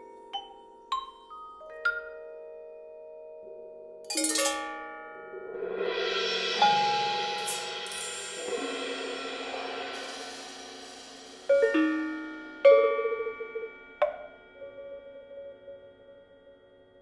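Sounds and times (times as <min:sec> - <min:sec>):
sharp metallic strikes: 0:04.1 - 0:15.0
struck metal percussion ringing: 0:04.1 - 0:15.3.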